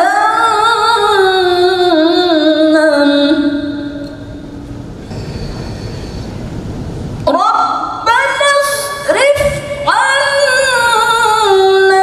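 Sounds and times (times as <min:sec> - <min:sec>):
low rumble of hall noise: 0:00.0 - 0:12.0.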